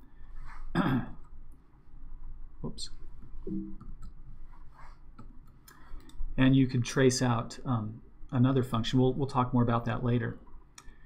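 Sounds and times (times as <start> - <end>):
man clearing throat: 0.8 - 1.2.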